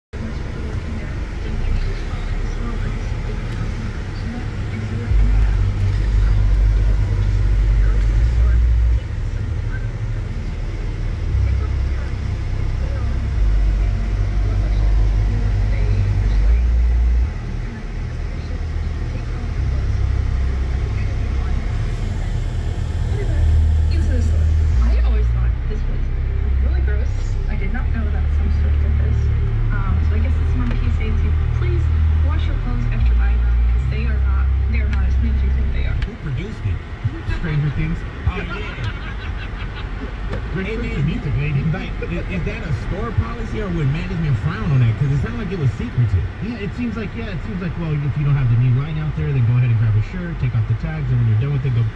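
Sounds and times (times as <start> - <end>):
car engine and road rumble: 0.0 - 51.9
faint talk from car radio: 0.0 - 51.9.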